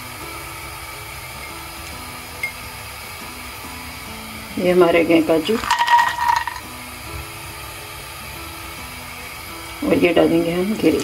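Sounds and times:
soft background music: 0.0 - 11.0
nuts clattering into a pan: 5.4 - 6.7.

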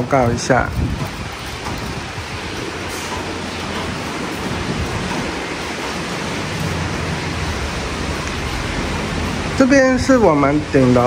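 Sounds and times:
falling rain hiss: 0.0 - 11.0.

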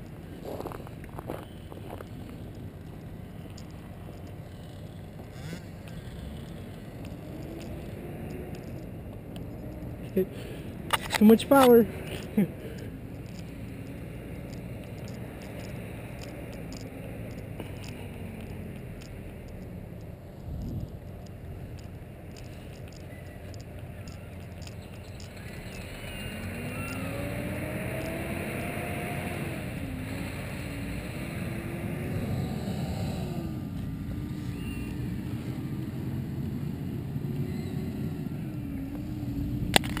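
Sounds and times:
small two-stroke engine revving: 4.5 - 8.8, 25.6 - 36.1.

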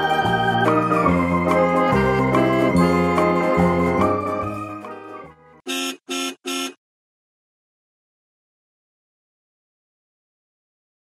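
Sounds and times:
background music: 0.0 - 5.7
short buzzer-like beeps: 5.7 - 6.8.

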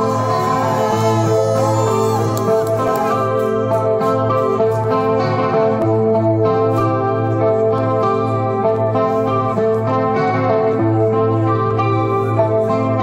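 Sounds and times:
electric guitar chords: 0.0 - 13.0.

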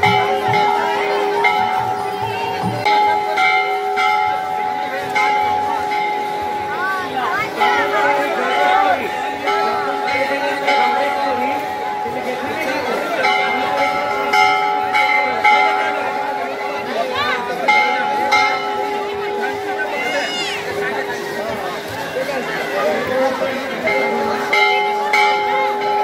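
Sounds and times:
metal temple bells ringing: 0.0 - 26.0.

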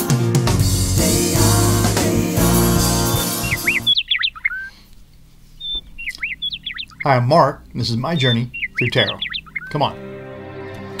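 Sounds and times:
intro music: 0.0 - 4.0, 9.9 - 11.0
bird chirping: 3.0 - 10.0.

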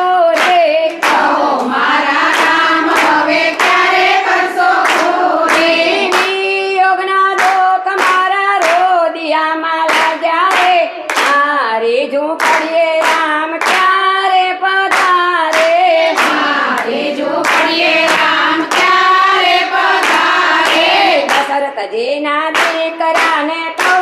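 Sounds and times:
steady hand-clapping: 0.0 - 24.0
women singing devotional song: 0.0 - 24.0.

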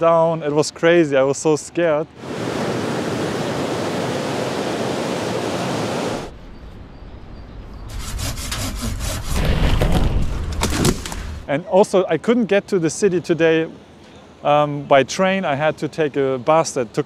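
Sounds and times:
storm wind rushing through trees: 2.1 - 7.5.

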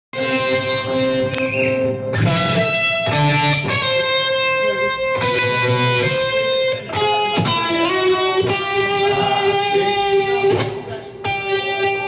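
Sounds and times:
electric guitar chords: 0.2 - 12.0.

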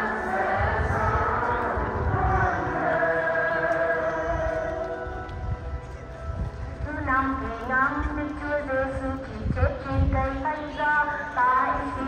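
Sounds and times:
voices chanting a prayer: 0.0 - 5.3.

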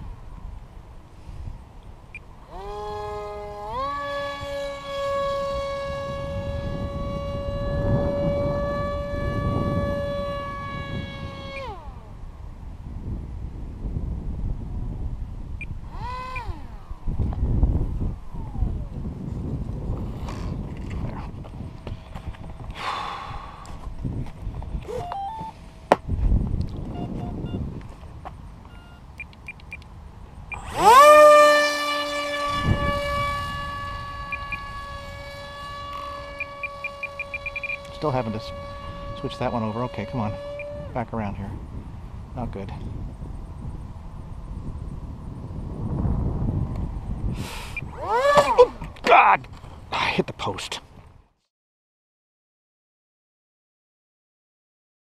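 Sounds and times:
electric motor and propeller whining: 0.0 - 49.9
wind rumble on microphone: 0.0 - 51.4.

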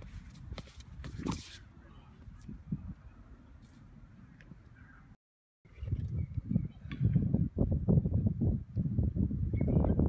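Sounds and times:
shoes scuffing on concrete: 0.0 - 1.6
low wind rumble: 5.7 - 10.0.

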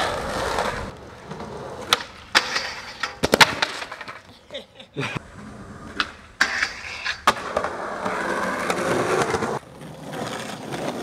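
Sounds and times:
skateboard scraping: 0.0 - 11.0
skateboard wheels rolling on concrete: 0.0 - 11.0
skateboard striking metal handrail: 1.8 - 4.2, 6.0 - 7.7.

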